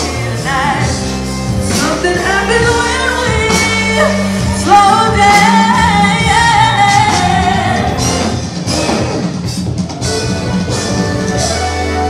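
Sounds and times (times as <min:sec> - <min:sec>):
woman singing: 0:00.0 - 0:08.1.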